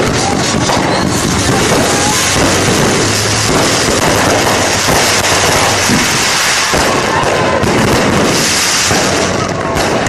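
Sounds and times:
fireworks crackling: 0.0s - 10.0s
fireworks sharp pops: 0.0s - 10.0s.

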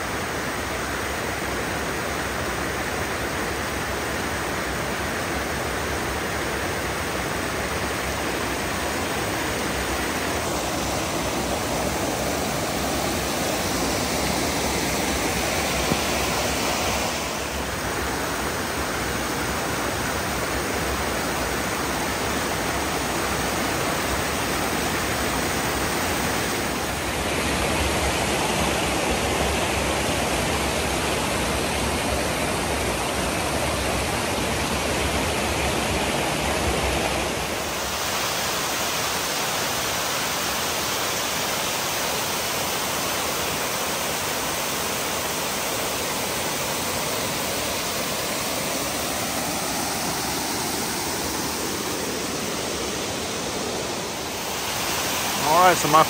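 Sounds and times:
waterfall and creek rushing: 0.0s - 56.0s.

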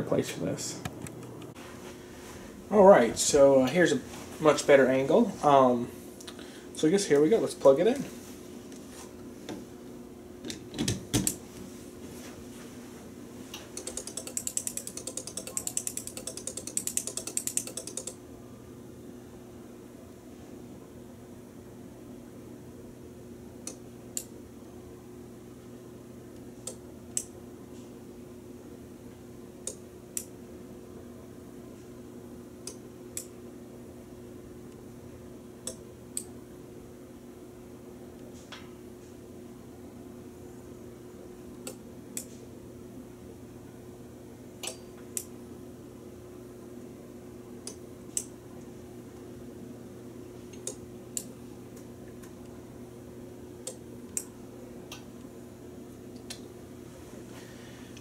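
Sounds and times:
steady low hum: 0.0s - 58.0s.

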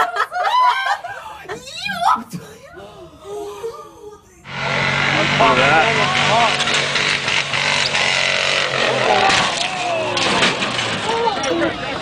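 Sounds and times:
crowd noise: 0.0s - 12.0s
truck engine running: 4.4s - 12.0s
people shouting: 5.2s - 6.7s, 8.9s - 11.6s.

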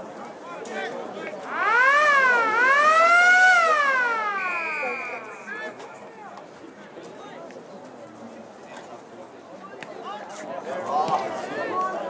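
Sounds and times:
siren wailing: 1.4s - 6.2s
high steady tone: 1.5s - 6.2s.

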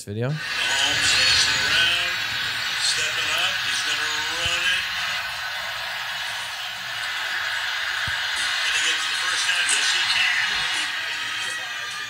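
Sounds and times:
voice: 0.0s - 5.3s, 8.4s - 12.0s
noisy rush from phone speaker: 0.4s - 12.0s.

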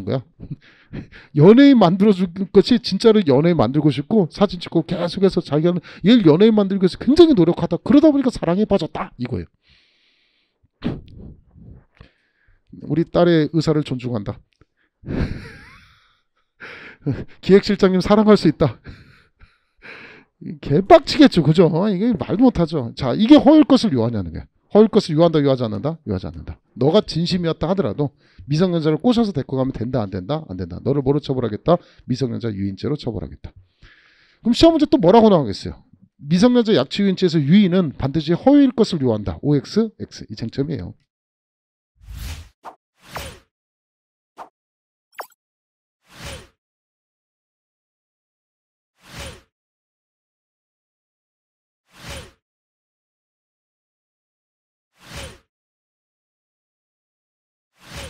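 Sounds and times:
short breath: 0.6s - 1.3s, 9.6s - 10.6s, 12.0s - 12.6s, 15.9s - 17.0s, 18.8s - 20.3s, 33.6s - 34.4s
man sighing: 15.7s - 17.0s
swish: 42.0s - 43.4s.

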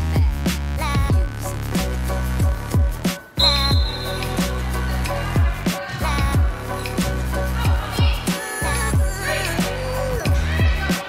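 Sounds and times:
beat-driven music with sliding bass: 0.0s - 11.0s.

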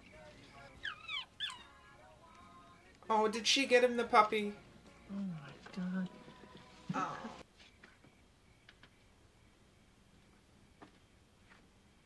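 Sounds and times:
soft film music: 0.0s - 7.4s
puppy whimpering: 0.8s - 1.8s.

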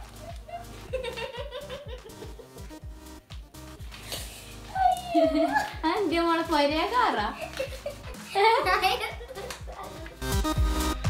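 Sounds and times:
music with bass beat: 0.0s - 11.0s.

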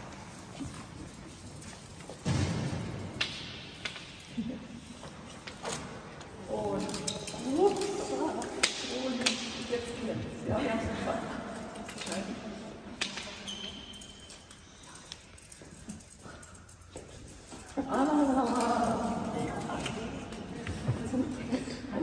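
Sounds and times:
group of people talking: 6.4s - 13.0s, 17.6s - 22.0s.

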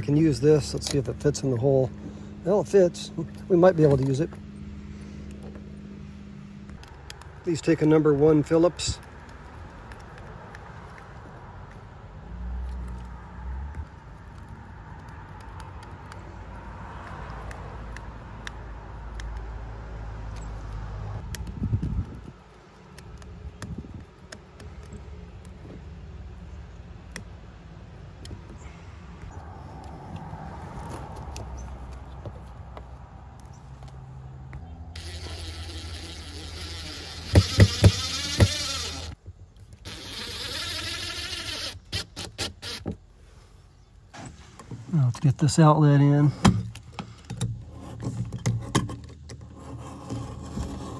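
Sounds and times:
cordless driver driving screws: 35.0s - 43.0s.

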